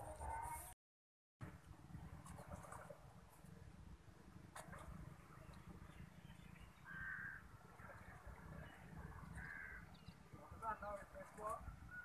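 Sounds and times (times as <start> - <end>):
faint crow caws: 6.8 - 7.5, 9.3 - 10.0.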